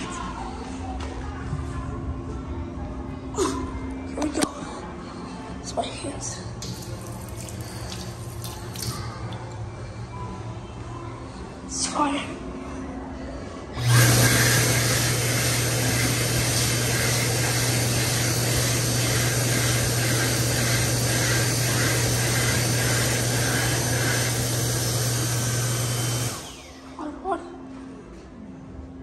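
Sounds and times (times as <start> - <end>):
hand dryer blowing air: 13.8 - 26.8.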